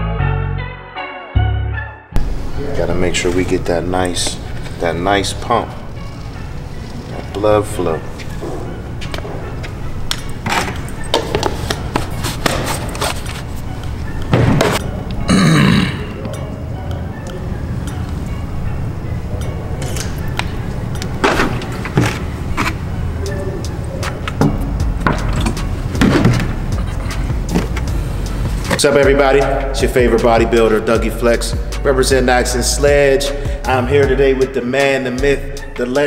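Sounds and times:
background music: 0.0 - 36.0.

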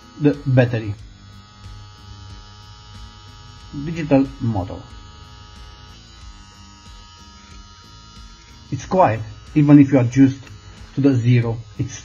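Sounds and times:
hair clipper motor humming: 0.0 - 12.0.

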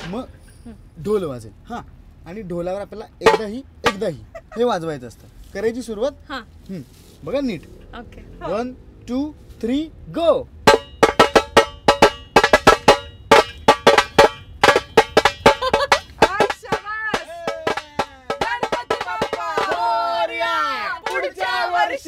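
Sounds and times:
drum beaten with sticks: 3.2 - 4.2, 10.6 - 21.8
voices singing: 16.2 - 22.0.

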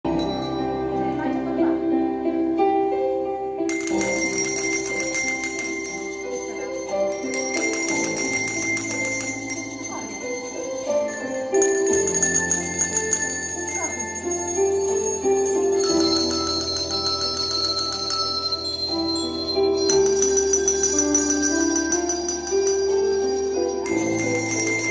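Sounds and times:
slow recorded music: 0.0 - 24.9
small bells jingling: 3.7 - 24.9.

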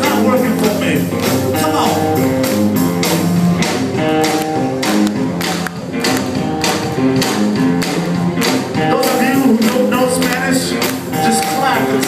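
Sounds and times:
driving drum beat: 0.0 - 12.0
electric guitar: 0.0 - 12.0
upright bass: 0.0 - 12.0.

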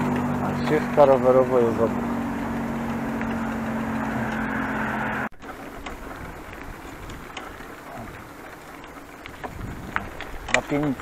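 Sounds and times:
bicycle riding: 0.0 - 11.0
vehicle hum and road noise: 0.0 - 11.0
bicycle clicks and rattles: 5.4 - 11.0.

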